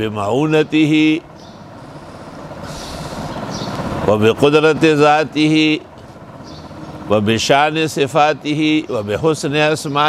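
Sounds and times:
motor vehicle passing: 0:00.0 - 0:10.0.

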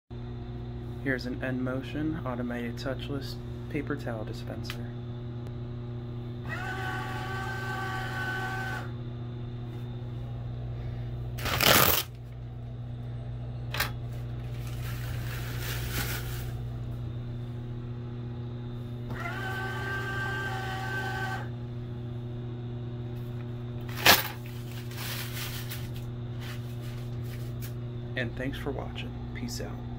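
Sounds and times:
paper towel dispenser motor whirring: 0:06.4 - 0:09.0, 0:11.4 - 0:12.2, 0:19.0 - 0:21.6
paper towel ripping: 0:11.4 - 0:12.1, 0:23.9 - 0:26.9.

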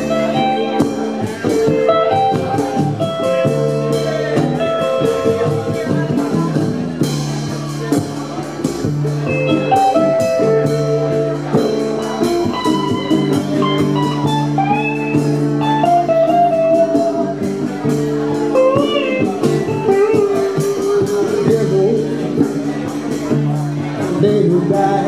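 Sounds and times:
amplified lead guitar: 0:00.0 - 0:25.0
hand drum beat: 0:00.0 - 0:25.0
rhythm guitar: 0:00.0 - 0:25.0.

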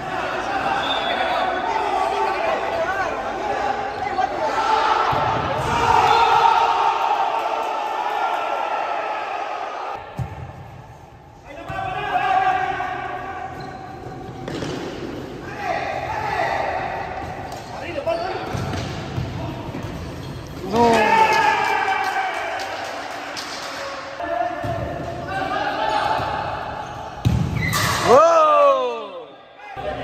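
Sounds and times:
players shouting: 0:00.0 - 0:10.0, 0:15.4 - 0:18.6, 0:20.6 - 0:27.1.

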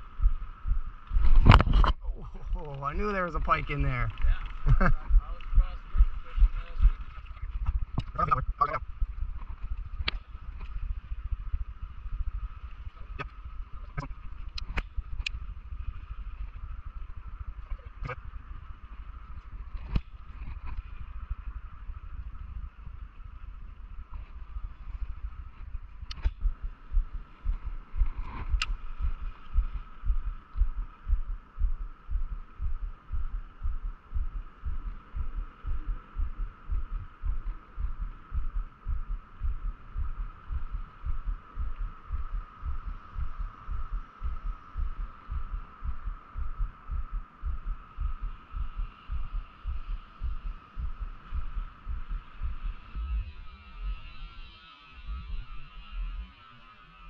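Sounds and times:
faint steady hum: 0:00.0 - 0:57.0
sharp clicks: 0:28.4 - 0:28.8.

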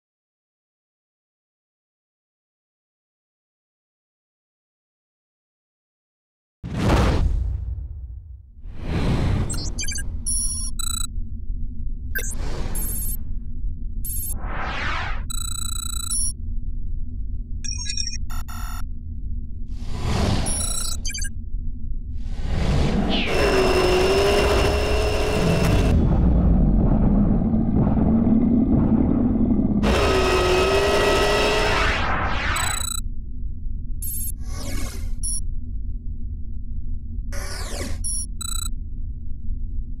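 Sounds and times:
short high electronic beeps: 0:09.5 - 0:11.1, 0:12.2 - 0:13.2, 0:14.1 - 0:16.3, 0:17.6 - 0:18.8, 0:20.5 - 0:21.3, 0:32.5 - 0:33.0, 0:34.0 - 0:34.4, 0:35.2 - 0:35.4, 0:37.8 - 0:38.7
synthetic engine effect: 0:09.5 - 0:11.1, 0:14.0 - 0:16.3, 0:19.8 - 0:21.4, 0:22.2 - 0:33.1, 0:37.3 - 0:38.7
steady low rumble: 0:09.5 - 0:14.7, 0:15.3 - 0:23.1, 0:25.5 - 0:30.4, 0:32.9 - 0:34.4, 0:35.1 - 0:37.4, 0:38.1 - 0:40.0.

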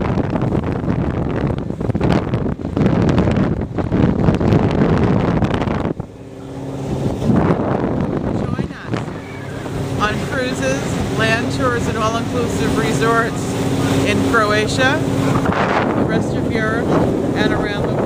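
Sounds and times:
boat engine drone: 0:00.0 - 0:18.0
wind buffeting microphone: 0:00.0 - 0:18.0.

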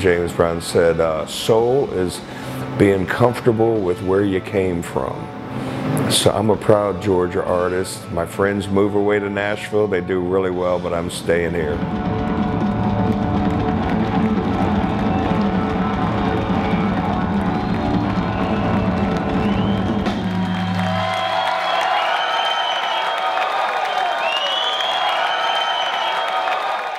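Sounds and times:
blues-rock band playing: 0:11.7 - 0:21.2
crowd cheering and whistling: 0:11.9 - 0:26.9.

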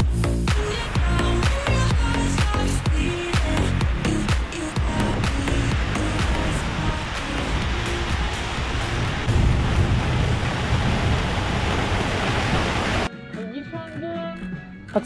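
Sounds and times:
driving rain: 0:00.0 - 0:13.1
wind hissing on microphone: 0:03.0 - 0:13.1.

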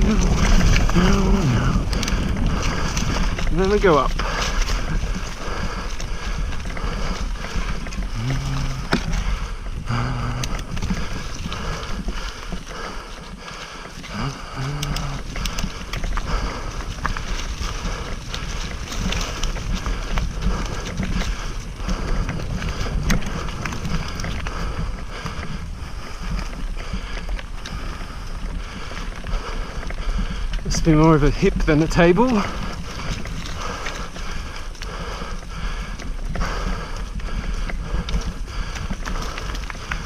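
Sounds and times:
bike tyres rolling on dirt trail: 0:00.0 - 0:40.0
wind buffeting microphone: 0:00.0 - 0:40.0.

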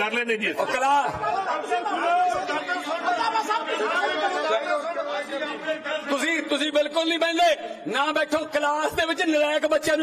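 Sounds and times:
men arguing over one another: 0:00.0 - 0:10.0.

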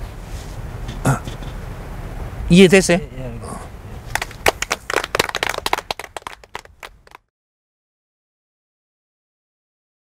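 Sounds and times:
group clapping: 0:04.1 - 0:07.3.

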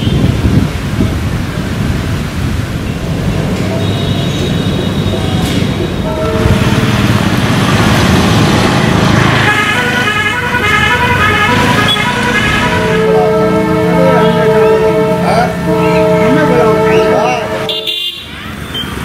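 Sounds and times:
traffic rumble: 0:00.0 - 0:19.0
vehicle horns: 0:03.6 - 0:07.9, 0:09.1 - 0:19.0
horn notes changing pitch: 0:06.0 - 0:07.2, 0:09.2 - 0:18.3.

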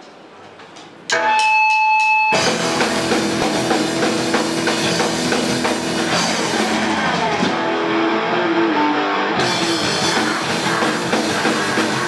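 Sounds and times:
sharp percussive hits: 0:01.1 - 0:06.6
electric guitar chord ringing: 0:01.1 - 0:12.0
rock band playing: 0:01.1 - 0:12.0.

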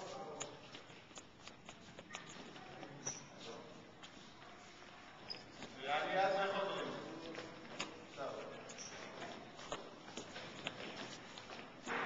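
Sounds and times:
children's feet on wooden floor: 0:00.0 - 0:12.0
soccer balls bouncing on wooden floor: 0:00.0 - 0:12.0.

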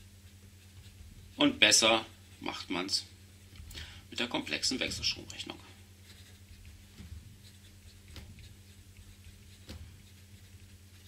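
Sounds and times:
pen scratching on paper: 0:00.0 - 0:02.7, 0:04.5 - 0:11.0
low steady hum: 0:00.0 - 0:11.0.

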